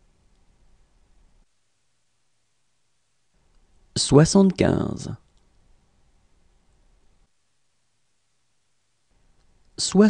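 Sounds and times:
person speaking: 3.9s - 5.3s, 9.7s - 10.0s.

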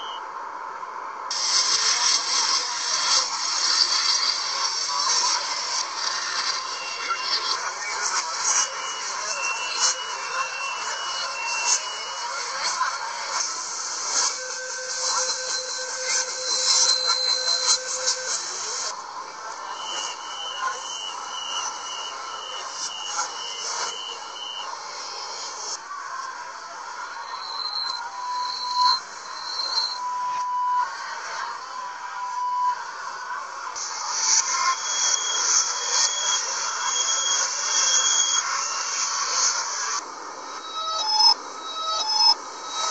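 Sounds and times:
station and carriage hiss: 1.3s - 42.9s
rapid beeps: 3.2s - 12.8s, 13.4s - 18.9s, 19.6s - 25.7s, 27.2s - 30.8s, 33.9s - 39.6s, 40.5s - 42.9s.

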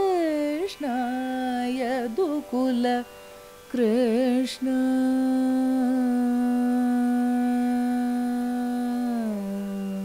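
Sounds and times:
woman singing long notes: 0.0s - 3.1s, 3.7s - 10.0s.

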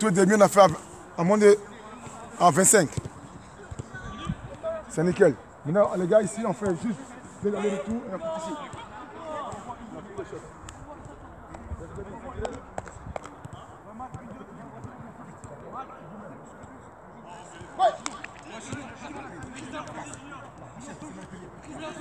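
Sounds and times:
football being kicked: 2.8s - 4.8s.

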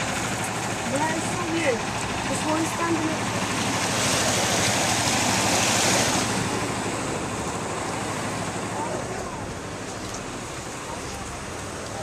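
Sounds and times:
river floodwater rushing: 0.0s - 12.0s.

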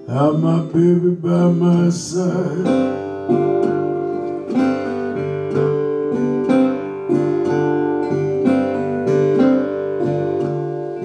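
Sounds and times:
acoustic blues guitar strumming: 0.0s - 11.0s.

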